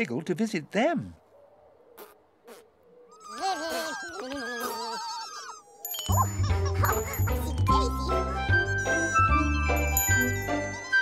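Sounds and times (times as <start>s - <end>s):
high squeaky voices chattering: 3.1s - 11.0s.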